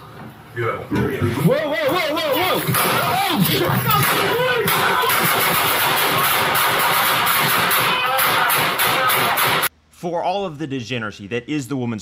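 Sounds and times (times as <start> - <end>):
rapid gunfire: 2.6 - 9.7.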